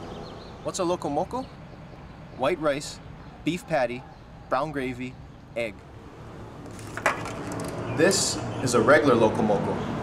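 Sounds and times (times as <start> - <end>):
plastic container cracking: 6.7 - 7.8.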